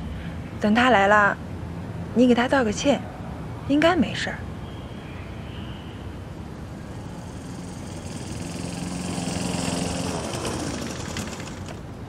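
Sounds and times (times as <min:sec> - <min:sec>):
motor scooter engine humming: 0:06.2 - 0:12.0.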